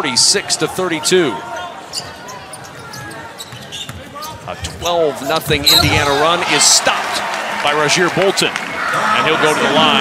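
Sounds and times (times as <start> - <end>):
arena crowd murmur: 0.0 - 10.0
faint voices in crowd: 0.0 - 10.0.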